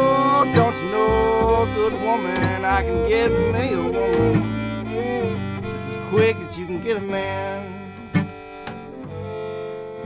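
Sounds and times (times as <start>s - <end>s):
acoustic guitar: 0.0s - 10.0s
bowed fiddle: 0.0s - 10.0s
plucked upright bass: 0.0s - 10.0s.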